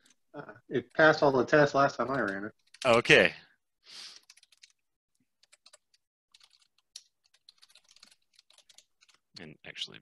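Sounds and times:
typing on keyboard: 4.2s - 4.8s, 5.4s - 9.3s.

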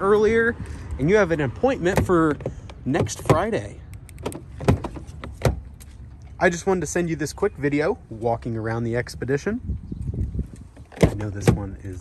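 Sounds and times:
car door handle and latch clicks: 1.9s - 5.7s.

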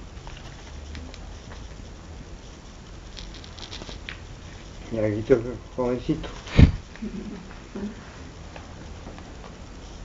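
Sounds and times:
low room noise: 0.0s - 10.0s
pages rustling: 3.1s - 4.2s.

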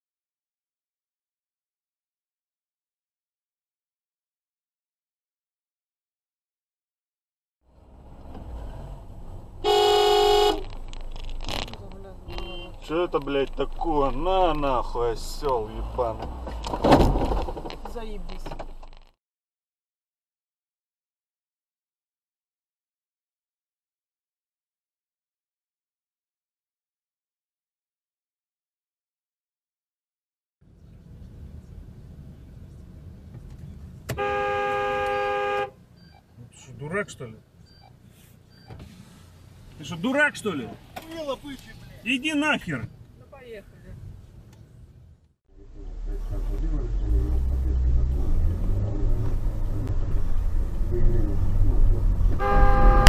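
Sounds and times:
car rumbling on the move: 7.6s - 19.2s, 30.6s - 53.0s
car horn blast: 9.6s - 10.7s, 12.3s - 12.8s, 34.1s - 35.8s, 52.3s - 53.0s.

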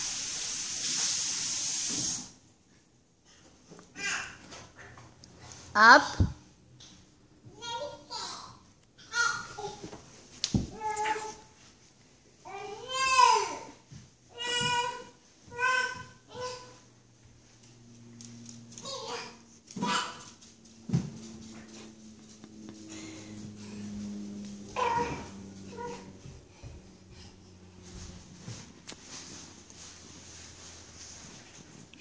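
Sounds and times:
steady low hum: 16.7s - 32.0s.

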